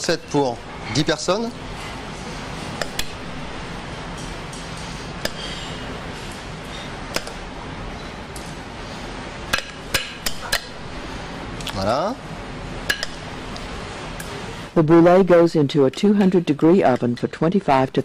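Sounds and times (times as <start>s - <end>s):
kitchen background hum: 0.0s - 18.0s.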